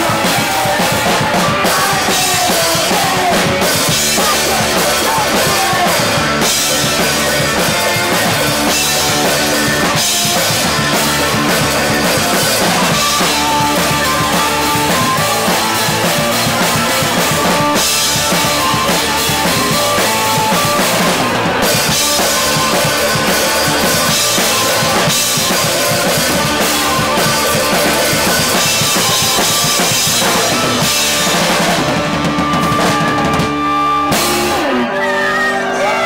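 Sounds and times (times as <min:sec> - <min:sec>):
distorted electric guitars: 0:00.0 - 0:36.0
punk rock band playing: 0:00.0 - 0:36.0.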